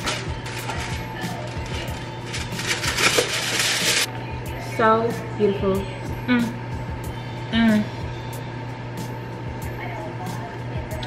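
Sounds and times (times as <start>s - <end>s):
plastic wrapper crinkling: 0.0s - 4.1s
background music: 0.0s - 11.0s.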